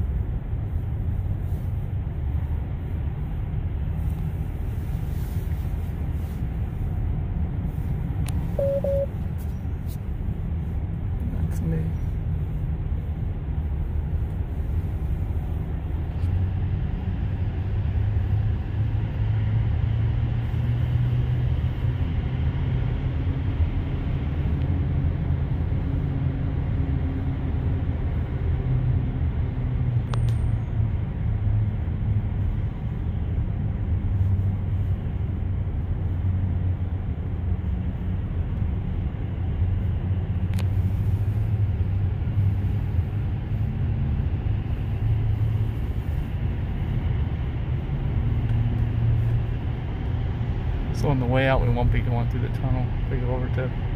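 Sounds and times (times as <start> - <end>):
car road rumble in cabin: 0.0 - 53.9.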